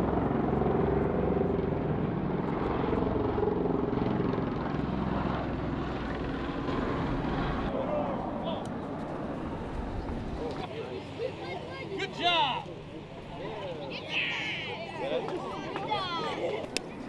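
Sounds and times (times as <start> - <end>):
voices: 7.7 - 17.0.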